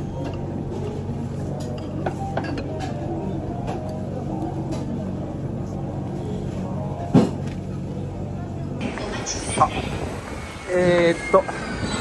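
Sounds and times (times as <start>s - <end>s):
murmur of diners' voices: 0.0s - 11.9s.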